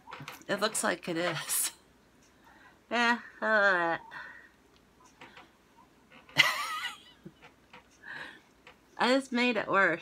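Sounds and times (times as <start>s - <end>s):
woman laughing: 2.9s - 4.2s, 6.4s - 7.5s.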